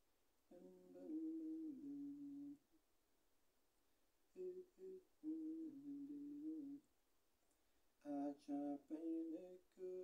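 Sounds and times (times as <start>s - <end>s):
man humming a tune: 0.5s - 2.6s, 4.4s - 6.8s.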